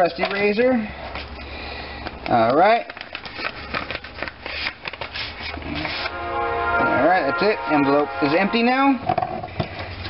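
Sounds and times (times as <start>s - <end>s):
paper rustling and crinkling: 2.2s - 6.1s.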